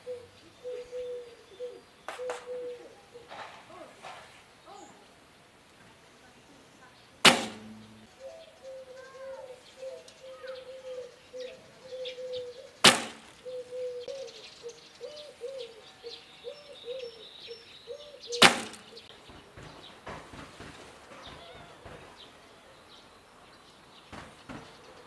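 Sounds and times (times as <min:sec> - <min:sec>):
birds singing: 0:00.0 - 0:05.4, 0:06.0 - 0:25.0
bowstring snapping: 0:07.3 - 0:07.9, 0:12.8 - 0:13.4, 0:18.4 - 0:18.9.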